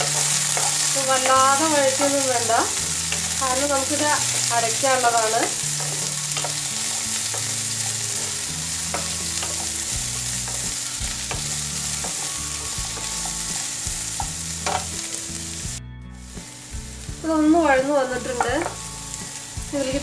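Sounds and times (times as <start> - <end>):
wooden spatula stirring: 0.0 - 14.8
onions sizzling in hot oil: 0.0 - 20.0.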